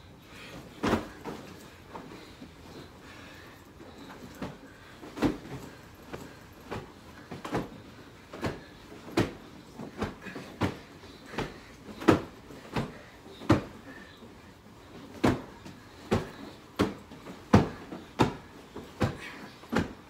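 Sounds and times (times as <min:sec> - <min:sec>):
pillows thumping: 0:00.4 - 0:20.0.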